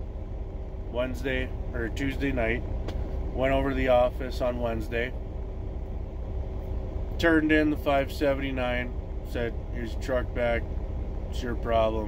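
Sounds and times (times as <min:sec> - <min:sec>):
faint steady hum: 0:00.0 - 0:12.0
truck engine idling: 0:00.0 - 0:12.0.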